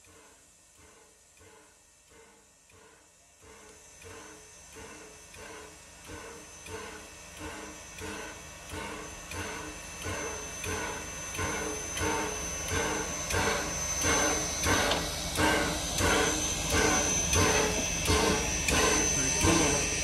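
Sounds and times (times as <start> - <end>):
steam locomotive chuffing: 0.0 - 20.0.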